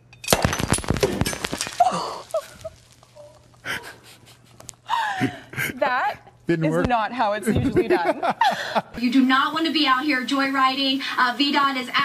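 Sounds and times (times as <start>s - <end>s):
champagne cork pop: 0.3s - 3.7s
champagne spraying and foaming: 1.0s - 4.5s, 9.0s - 12.0s
person gasping: 3.6s - 4.0s, 4.9s - 5.8s.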